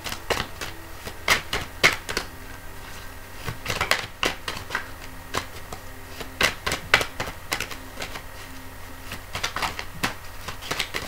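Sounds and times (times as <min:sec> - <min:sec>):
cards being shuffled: 0:00.0 - 0:11.0.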